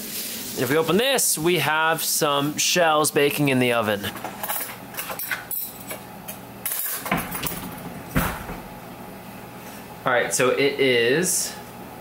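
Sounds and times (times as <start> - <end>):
kitchenware clinking and clattering: 4.0 - 8.6.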